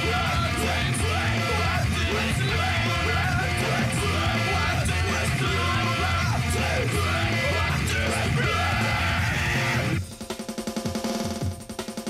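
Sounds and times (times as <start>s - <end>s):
pounding bass: 0.0s - 10.0s
yelled vocals: 0.0s - 10.0s
heavy metal band playing: 0.0s - 10.1s.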